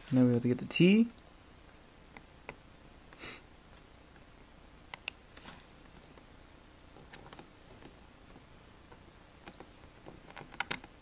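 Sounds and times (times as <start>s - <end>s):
person sniffing: 3.2s - 3.5s.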